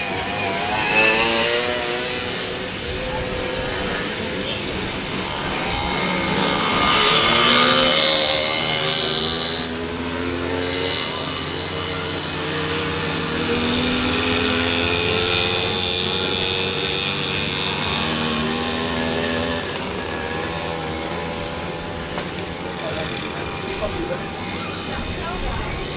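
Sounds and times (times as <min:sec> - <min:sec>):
racing motorcycles revving: 0:00.0 - 0:25.9.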